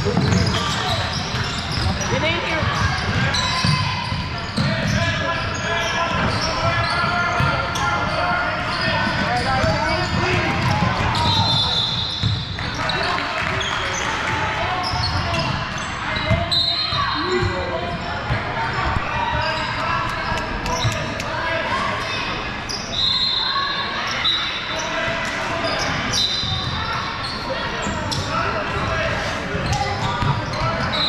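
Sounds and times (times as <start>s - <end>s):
sneakers squeaking: 0.0s - 31.0s
voices of players and spectators: 0.0s - 31.0s.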